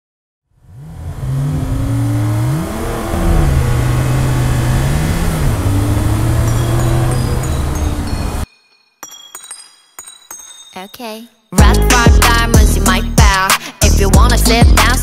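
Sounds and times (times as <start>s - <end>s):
car engine revving: 0.6s - 8.4s.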